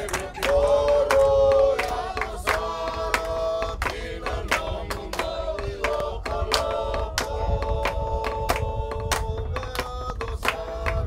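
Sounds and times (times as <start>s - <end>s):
group singing in harmony: 0.0s - 11.0s
hand claps: 0.0s - 11.0s.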